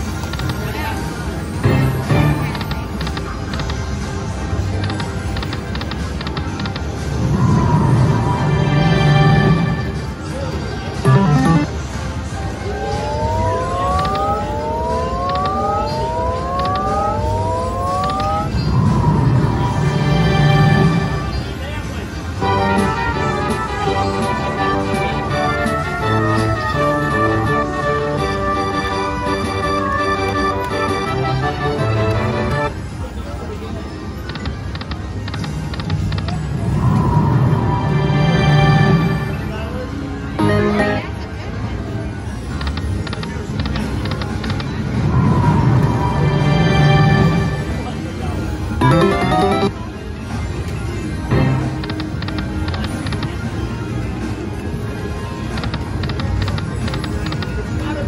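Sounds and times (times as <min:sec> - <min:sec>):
slot machine chime: 0:00.0 - 0:03.0, 0:11.0 - 0:11.9, 0:12.6 - 0:21.4, 0:45.9 - 0:49.9
slot machine background music: 0:00.0 - 0:58.0
win jingle: 0:00.5 - 0:03.0, 0:48.7 - 0:49.8
rising electronic tones: 0:07.1 - 0:10.2, 0:11.0 - 0:11.9, 0:12.6 - 0:21.4, 0:44.9 - 0:47.8, 0:48.8 - 0:49.8.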